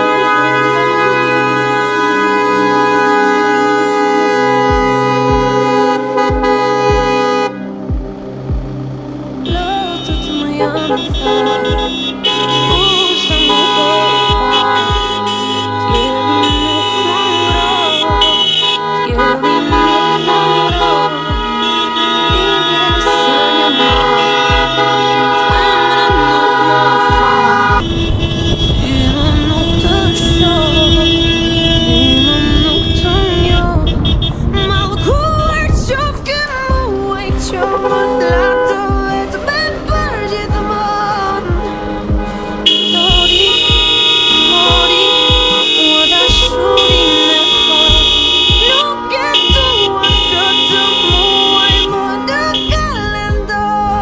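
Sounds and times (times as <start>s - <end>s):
car horns honking: 0.0s - 54.0s
low rumble of moving car: 0.0s - 54.0s
music with a steady beat: 2.6s - 54.0s.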